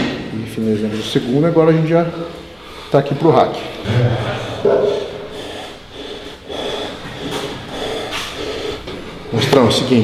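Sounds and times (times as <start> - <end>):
man grunting: 3.8 - 5.1.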